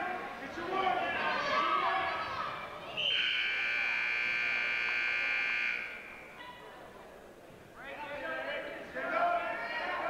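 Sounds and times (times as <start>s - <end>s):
scoreboard buzzer: 3.2s - 6.2s.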